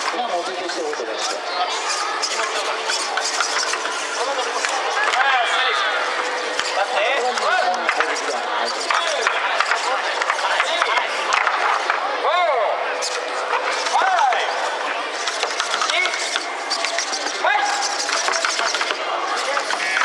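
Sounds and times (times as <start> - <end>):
background chatter: 0.0 - 20.0
robot limbs clicking and clattering: 6.2 - 12.0, 15.2 - 20.0.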